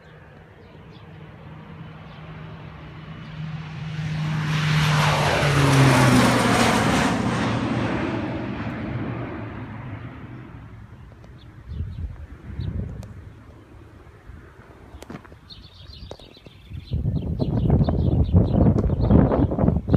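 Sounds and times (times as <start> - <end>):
airplane engine flying overhead: 0.0 - 19.9.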